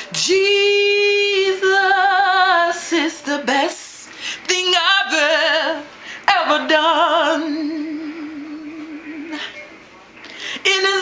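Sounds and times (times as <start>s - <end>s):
woman singing unaccompanied: 0.0s - 9.5s, 10.6s - 11.0s.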